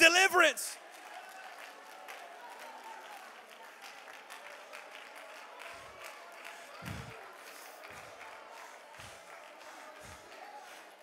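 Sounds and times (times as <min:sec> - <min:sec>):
hand claps: 0:00.8 - 0:11.0
murmur of praying voices: 0:05.6 - 0:11.0.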